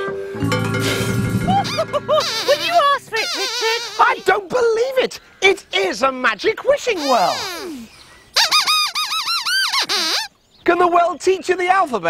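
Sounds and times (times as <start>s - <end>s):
toy squeaker squeaking: 1.6s - 4.4s, 7.0s - 7.8s, 8.4s - 10.3s.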